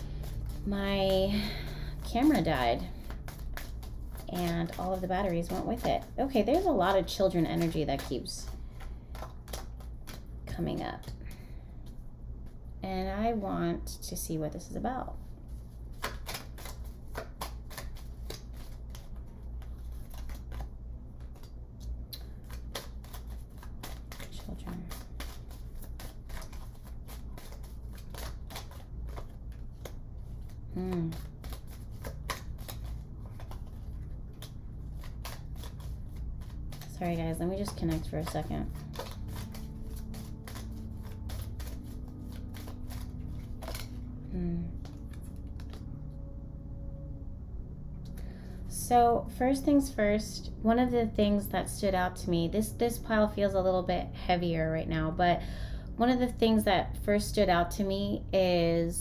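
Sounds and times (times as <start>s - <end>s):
cards being shuffled: 0.0s - 12.6s, 15.2s - 46.2s
low steady hum: 0.0s - 59.0s.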